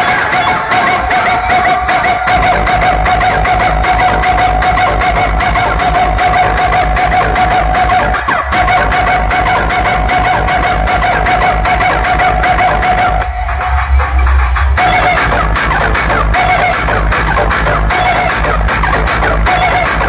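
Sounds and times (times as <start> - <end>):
steady held high tone: 0.0 - 18.7
fast bass beat: 0.0 - 20.0
loud dance music: 0.0 - 20.0.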